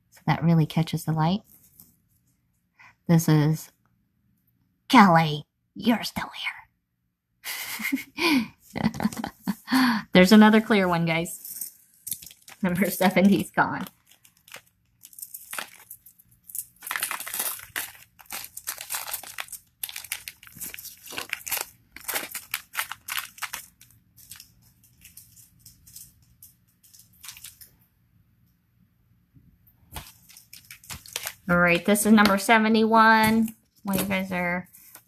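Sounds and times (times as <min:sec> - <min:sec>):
plastic bag crinkling: 0:11.3 - 0:27.7, 0:30.0 - 0:32.5.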